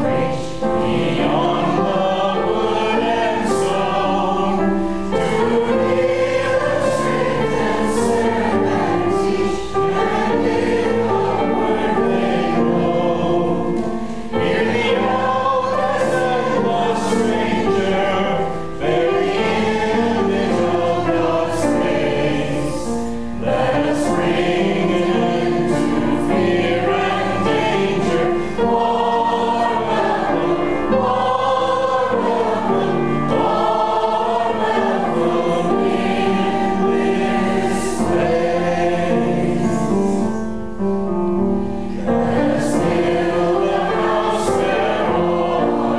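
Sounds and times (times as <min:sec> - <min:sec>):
choir singing: 0:00.0 - 0:40.8, 0:41.5 - 0:45.9.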